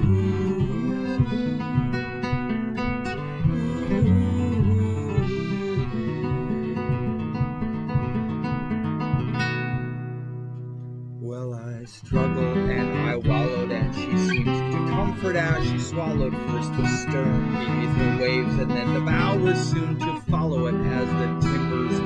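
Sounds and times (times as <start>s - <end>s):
classical guitar: 0.0s - 22.0s.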